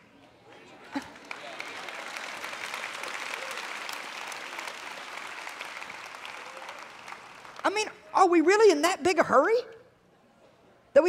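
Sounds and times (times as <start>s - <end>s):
audience applauding: 0.9s - 8.0s.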